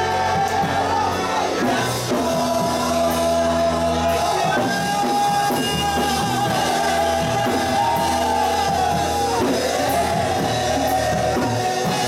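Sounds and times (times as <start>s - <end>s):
congregation singing: 0.0s - 12.0s
instrumental accompaniment: 0.0s - 12.0s.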